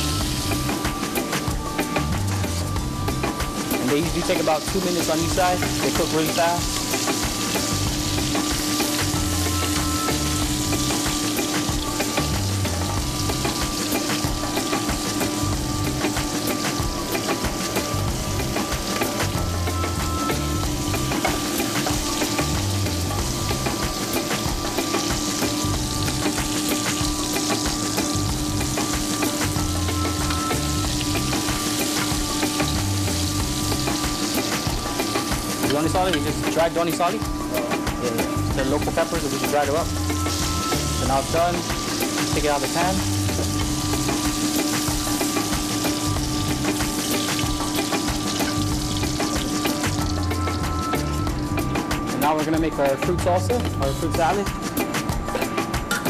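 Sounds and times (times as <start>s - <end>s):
prawns sizzling in hot oil: 0.0s - 56.0s.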